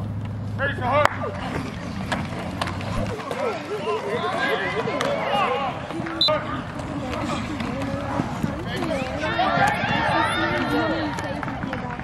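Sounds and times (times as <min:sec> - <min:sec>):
voices shouting and cheering: 0:02.8 - 0:12.0.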